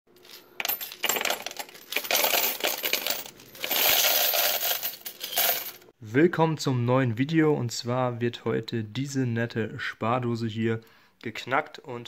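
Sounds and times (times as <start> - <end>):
coins clattering onto metal tray: 0.2 - 5.8.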